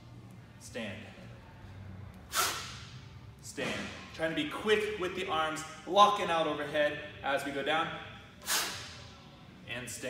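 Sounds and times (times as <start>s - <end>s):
sharp rush of air: 2.3s - 2.9s.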